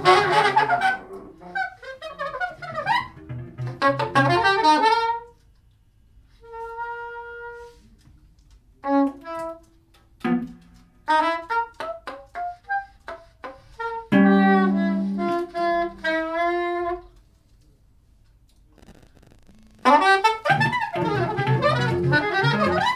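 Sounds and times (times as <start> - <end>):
soprano saxophone playing: 0.0 - 5.4, 6.4 - 7.9, 8.8 - 9.7, 11.1 - 17.2, 18.8 - 22.9
plucked guitar notes: 2.1 - 4.8, 10.2 - 11.0, 14.1 - 15.6, 19.6 - 22.9.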